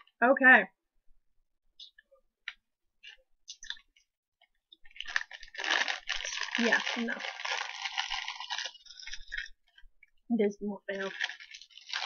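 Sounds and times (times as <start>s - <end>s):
plastic candy bag crinkling: 4.8s - 9.9s, 10.9s - 12.0s.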